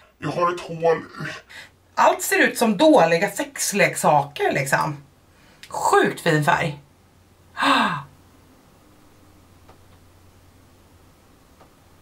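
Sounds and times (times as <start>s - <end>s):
woman sighing: 7.6s - 8.2s.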